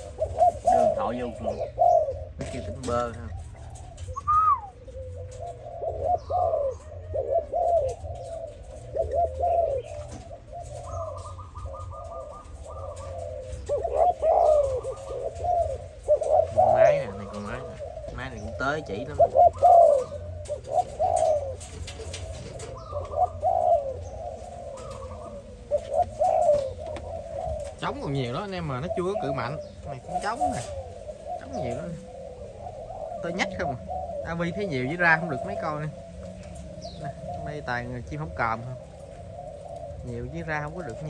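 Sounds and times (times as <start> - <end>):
doves cooing: 0.0 - 41.0.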